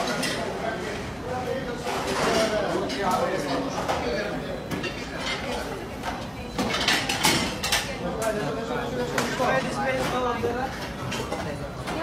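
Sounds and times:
plates and cutlery clattering: 0:01.8 - 0:08.4.

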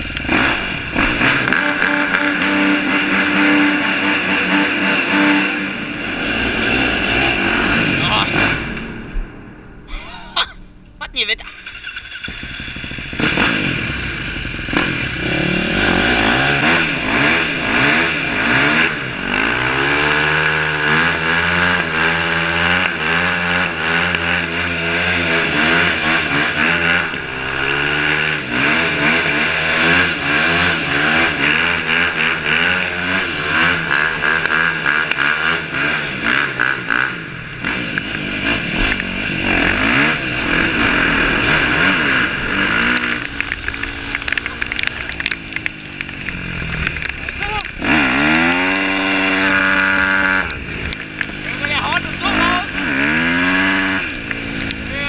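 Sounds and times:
dirt bike engine revving: 0:00.0 - 0:09.7, 0:11.4 - 0:55.0.

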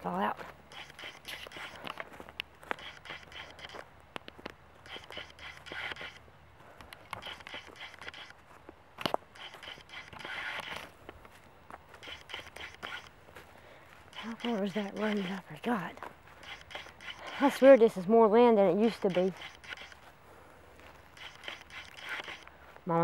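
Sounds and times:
footsteps through grass: 0:00.0 - 0:23.0
sharp click: 0:00.7 - 0:02.1, 0:02.7 - 0:06.2, 0:06.8 - 0:08.4, 0:09.0 - 0:10.9, 0:12.0 - 0:13.1, 0:14.1 - 0:15.5, 0:16.4 - 0:17.4, 0:18.8 - 0:20.0, 0:21.2 - 0:22.5.

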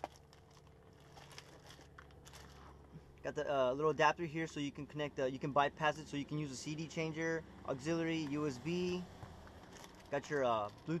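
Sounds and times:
plastic bags crinkling: 0:00.0 - 0:02.9, 0:09.6 - 0:10.9.

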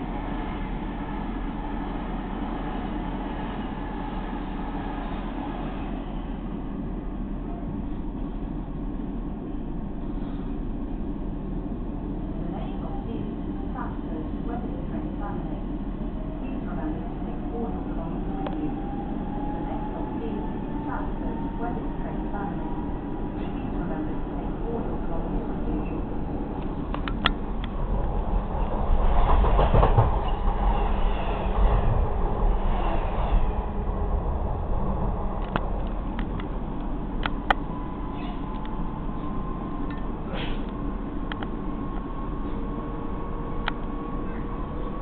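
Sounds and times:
train carriage rumble and whine: 0:00.0 - 0:45.0.

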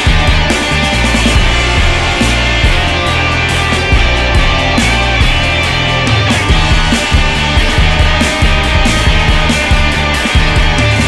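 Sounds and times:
bass guitar: 0:00.0 - 0:11.0
electric guitars: 0:00.0 - 0:11.0
steady drum beat: 0:00.0 - 0:11.0.

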